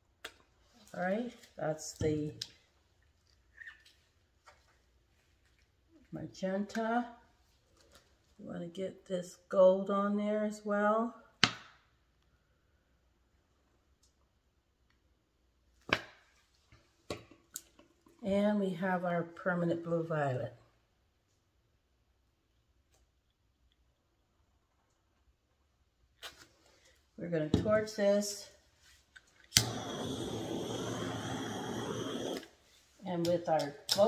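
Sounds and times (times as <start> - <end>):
butane torch hissing flame: 29.5 - 32.7.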